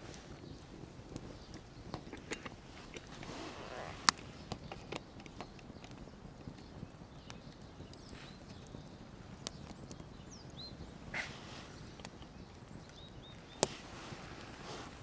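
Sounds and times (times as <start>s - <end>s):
campfire crackling and popping: 0.0s - 15.0s.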